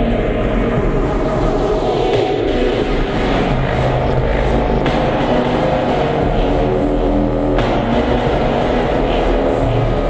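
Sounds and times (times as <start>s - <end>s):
harsh noise music: 0.0s - 10.0s.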